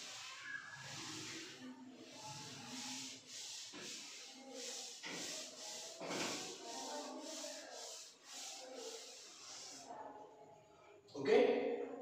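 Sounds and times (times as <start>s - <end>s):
scraping strokes on a surface: 0.0s - 10.0s.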